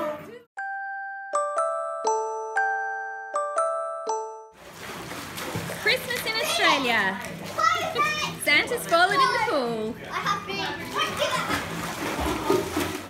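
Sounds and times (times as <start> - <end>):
water splashing: 4.6 - 13.0.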